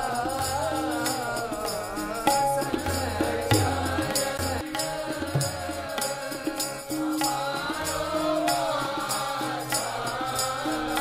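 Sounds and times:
chant-like singing: 0:00.0 - 0:11.0
harmonium chords: 0:00.0 - 0:11.0
tabla strokes: 0:00.0 - 0:11.0.

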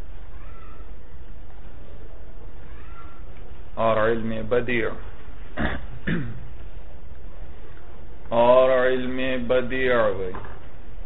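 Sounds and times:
recording hiss and hum: 0:00.0 - 0:11.0
faint rising and falling cry: 0:00.2 - 0:01.1, 0:02.0 - 0:03.3.

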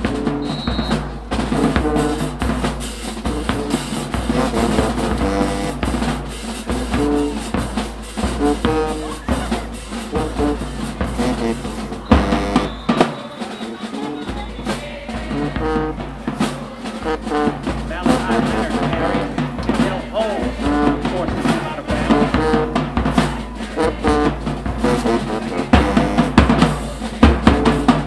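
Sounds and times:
full band hit: 0:00.0 - 0:28.0
marching band playing: 0:00.0 - 0:28.0
snare and bass drum cadence: 0:00.0 - 0:28.0.

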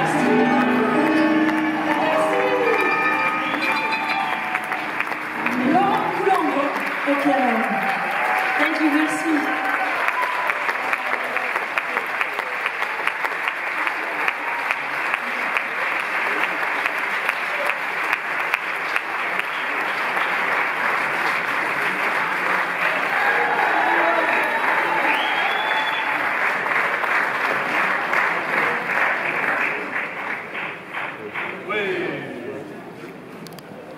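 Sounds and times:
audience applauding: 0:00.0 - 0:32.2.

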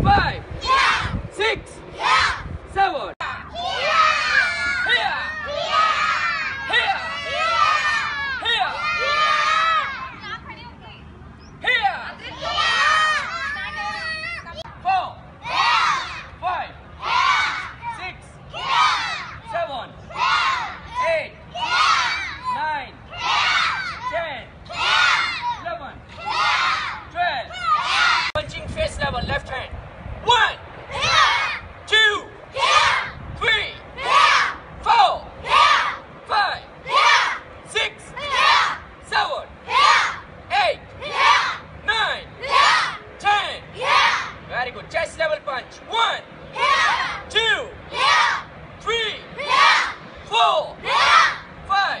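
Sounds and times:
children shouting in unison: 0:00.6 - 0:01.1, 0:02.0 - 0:02.5, 0:03.5 - 0:10.2, 0:12.2 - 0:14.6, 0:15.4 - 0:16.4, 0:17.0 - 0:28.4, 0:30.9 - 0:31.7, 0:32.5 - 0:33.2, 0:34.0 - 0:34.6, 0:35.4 - 0:36.0, 0:36.8 - 0:37.5, 0:38.2 - 0:38.8, 0:39.7 - 0:40.3, 0:41.0 - 0:41.7, 0:42.4 - 0:43.0, 0:43.8 - 0:44.4, 0:46.5 - 0:47.3, 0:47.9 - 0:48.5, 0:49.4 - 0:50.0, 0:50.8 - 0:51.5.

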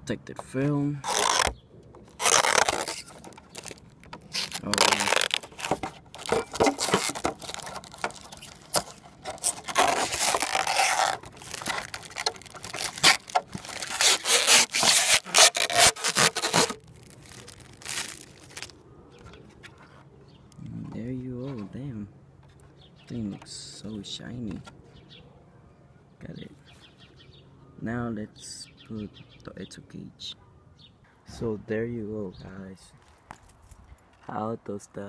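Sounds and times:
plastic film peeling and crackling: 0:01.0 - 0:18.8.

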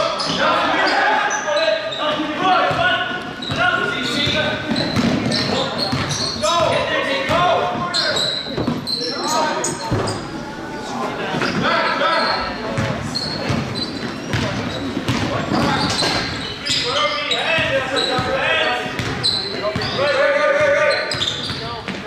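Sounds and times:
players calling out: 0:00.0 - 0:22.0
sneakers squeaking: 0:00.0 - 0:22.0.

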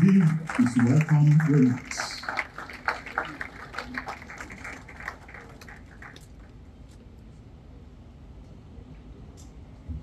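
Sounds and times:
audience clapping: 0:00.0 - 0:06.5.

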